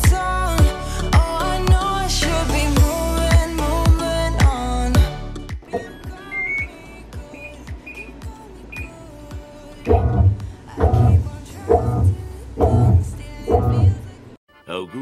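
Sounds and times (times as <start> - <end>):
background music: 0.0 - 15.0
short high button beeps: 5.8 - 6.7, 7.3 - 8.2
heavy pulsing beat: 9.9 - 14.1.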